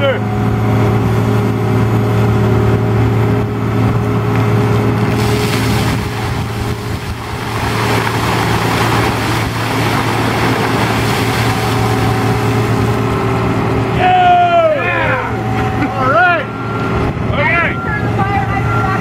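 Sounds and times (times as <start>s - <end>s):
diesel engine running: 0.0s - 19.0s
water pouring and splashing: 4.9s - 13.1s.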